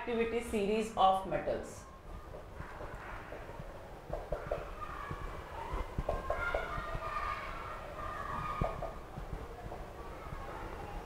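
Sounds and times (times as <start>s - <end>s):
marker squeaking on whiteboard: 2.2s - 10.6s.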